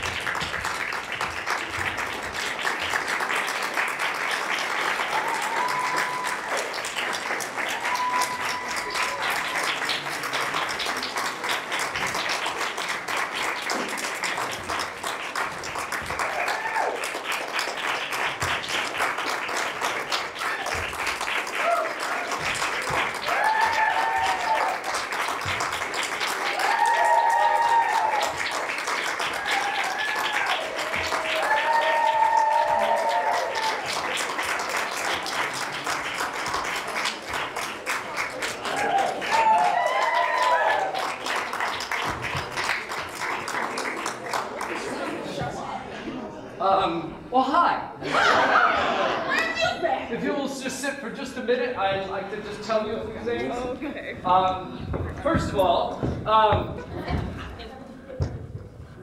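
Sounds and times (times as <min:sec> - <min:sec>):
audience applauding: 0:00.0 - 0:45.6
shouted cheers and whoops: 0:05.1 - 0:06.7, 0:07.6 - 0:09.6, 0:16.2 - 0:17.0, 0:21.6 - 0:22.2, 0:23.2 - 0:24.8, 0:26.4 - 0:28.4, 0:29.3 - 0:33.9, 0:38.7 - 0:41.0.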